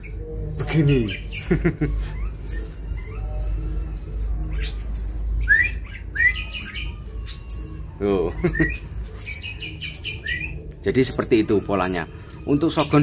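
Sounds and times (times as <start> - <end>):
young bird chirping: 0.0 - 13.0.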